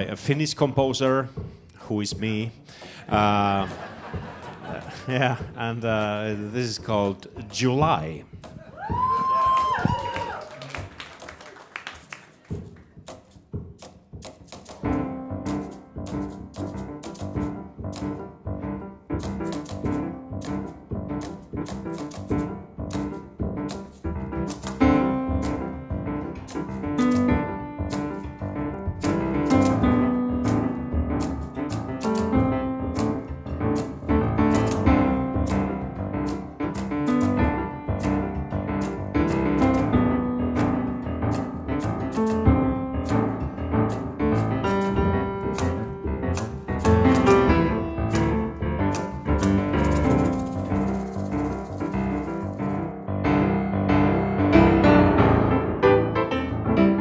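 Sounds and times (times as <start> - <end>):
jazz piano duet: 12.3 - 57.0.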